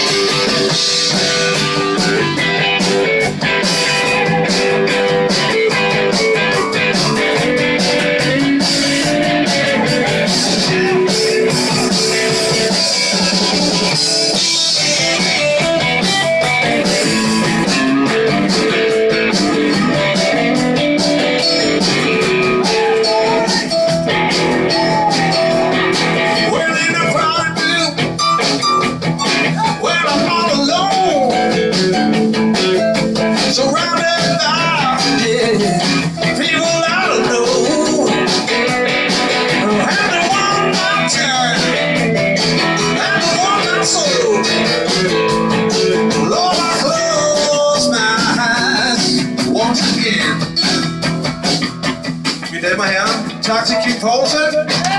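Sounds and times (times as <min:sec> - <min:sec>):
drum kit: 0:00.0 - 0:54.9
electric guitars: 0:00.0 - 0:54.9.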